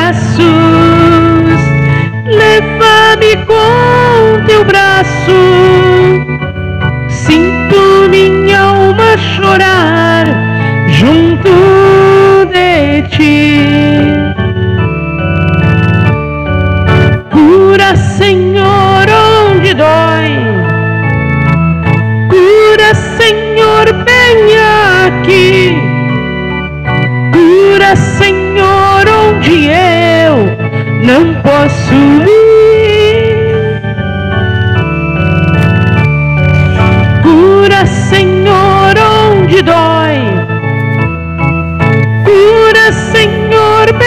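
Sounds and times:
person singing a hymn: 0.0s - 14.6s, 17.1s - 21.2s, 22.0s - 26.2s, 27.3s - 34.9s, 36.6s - 41.2s, 42.0s - 44.0s
electronic organ with tremolo: 0.0s - 44.0s
instrumental accompaniment: 0.0s - 44.0s.

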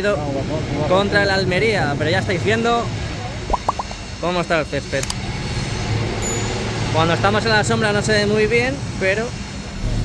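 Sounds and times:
rushing background noise: 0.0s - 10.0s
low machinery hum: 5.2s - 10.0s.

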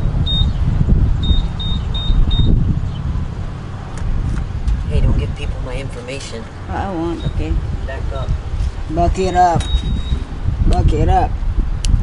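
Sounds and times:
steady low rumble: 0.0s - 12.0s
keypad beeps: 0.2s - 0.6s, 1.2s - 2.6s, 9.6s - 10.3s.

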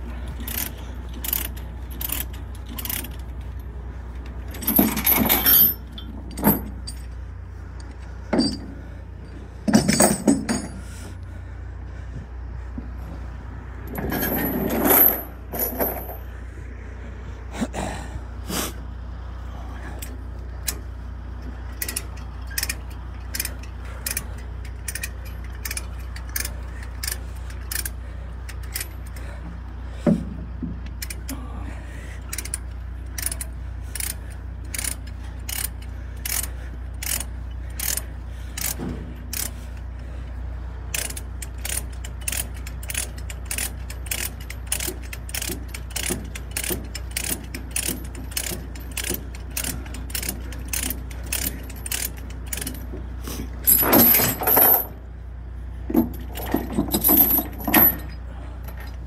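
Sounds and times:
steady low drone: 0.0s - 59.0s
ratchet pawl clicking: 0.4s - 3.3s, 21.7s - 29.2s, 32.3s - 39.7s, 40.9s - 52.8s.

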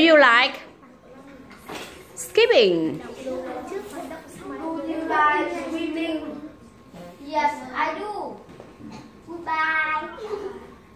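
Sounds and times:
child speaking: 3.0s - 8.4s, 9.1s - 10.8s.

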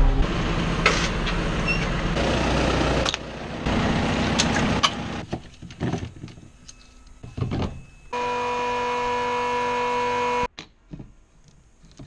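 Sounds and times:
electric fuel pump humming: 8.1s - 10.5s.

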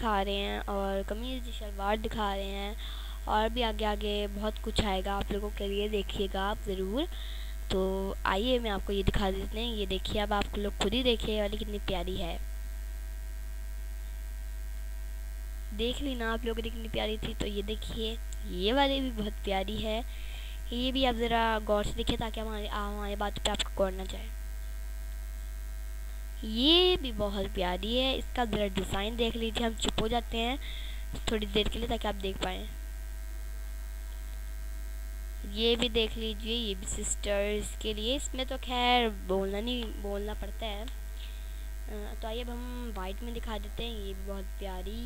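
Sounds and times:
faint hiss: 0.0s - 13.0s, 15.2s - 45.0s
electrical mains hum: 0.0s - 45.0s.

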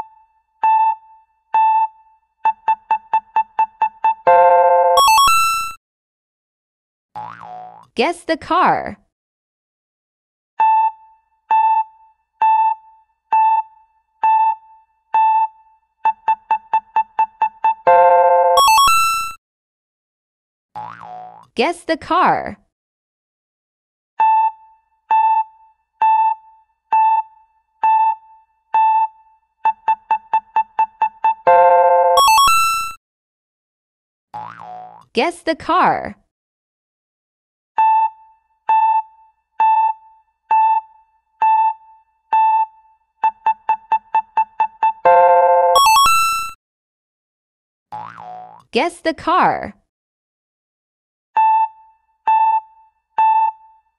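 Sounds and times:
electronic chime jingle: 4.3s - 5.8s, 17.9s - 19.4s, 31.5s - 33.0s, 45.1s - 46.6s
cartoon boing sound effect: 7.2s - 7.9s, 20.8s - 21.5s, 34.4s - 35.1s, 48.0s - 48.7s.

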